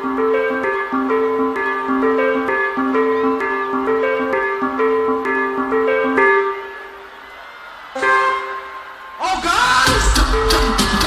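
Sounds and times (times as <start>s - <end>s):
live band playing instrumental: 9.8s - 11.0s.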